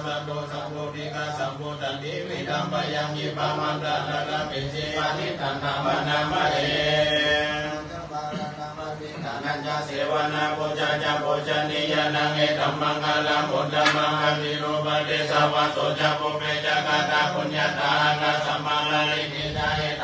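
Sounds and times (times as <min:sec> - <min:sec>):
voices chanting in unison: 0:00.0 - 0:20.0.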